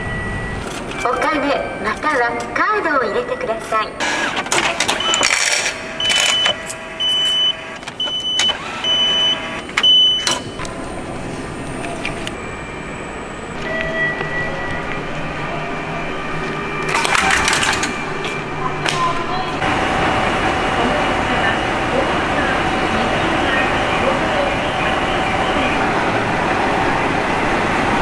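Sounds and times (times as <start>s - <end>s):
steady background hum: 0.0s - 28.0s
short electronic beeps: 5.0s - 10.6s, 12.3s - 19.2s.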